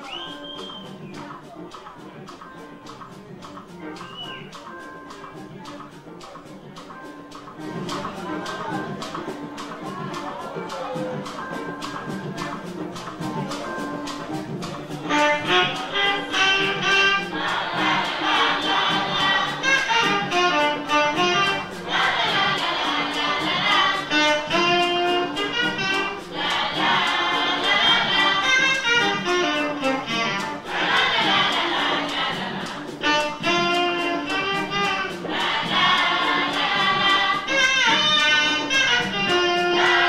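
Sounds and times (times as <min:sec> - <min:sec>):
afrobeat band: 0:00.0 - 0:40.0
steady percussion ticking: 0:00.0 - 0:40.0
horn melody: 0:12.4 - 0:40.0
female chorus singing held notes: 0:17.2 - 0:19.9, 0:21.7 - 0:24.2, 0:26.2 - 0:28.6, 0:30.6 - 0:33.0, 0:35.2 - 0:37.6.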